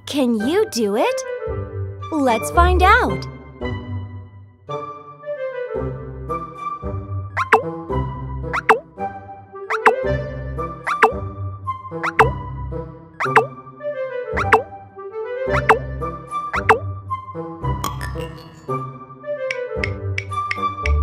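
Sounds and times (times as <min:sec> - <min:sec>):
playful cartoon music: 0:00.0 - 0:21.0
falling plop sound effect: 0:07.4 - 0:07.7, 0:08.6 - 0:08.9, 0:09.7 - 0:10.1, 0:10.9 - 0:11.2, 0:12.0 - 0:12.4, 0:13.2 - 0:13.6, 0:14.4 - 0:14.7, 0:15.5 - 0:15.9, 0:16.6 - 0:16.9.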